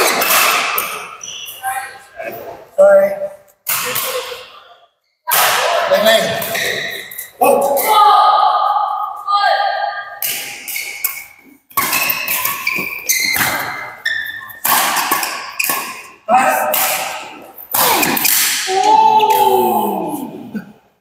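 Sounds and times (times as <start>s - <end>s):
rackets hitting shuttlecock: 0.0s - 1.2s, 3.6s - 4.5s, 5.3s - 7.9s, 10.1s - 19.4s.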